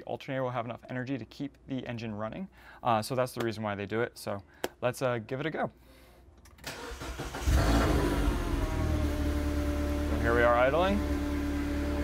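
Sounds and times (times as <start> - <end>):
car engine starting and idling: 6.6 - 12.0.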